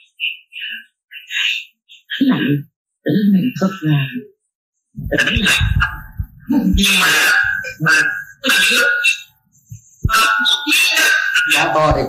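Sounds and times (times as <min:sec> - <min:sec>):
people's voices: 0:00.0 - 0:04.3, 0:05.0 - 0:12.0.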